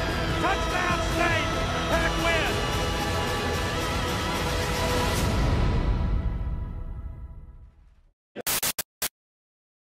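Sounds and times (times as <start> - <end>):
harsh static-like noise bursts: 8.4 - 9.1.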